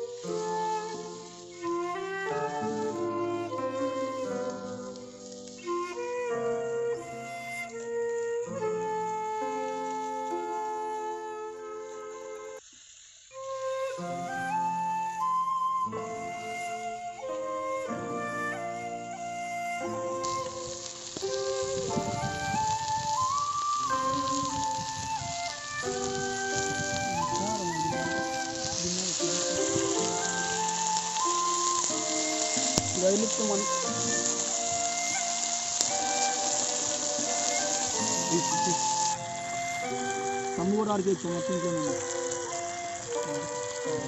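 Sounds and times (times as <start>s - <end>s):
fish sizzling in oil: 0.0s - 44.0s
flute music: 0.0s - 44.0s.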